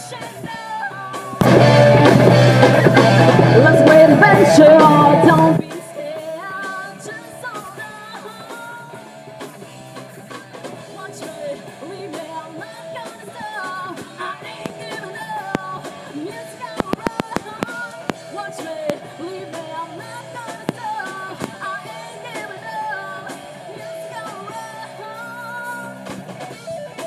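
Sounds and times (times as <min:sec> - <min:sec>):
person singing: 0:00.0 - 0:09.0, 0:10.8 - 0:27.0
live rock band playing: 0:00.0 - 0:27.0
drum fill: 0:01.4 - 0:05.7.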